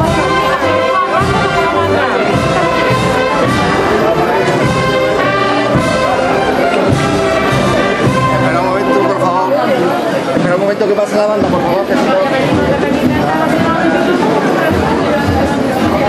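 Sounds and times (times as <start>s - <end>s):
symphonic band playing a march: 0.0s - 16.0s.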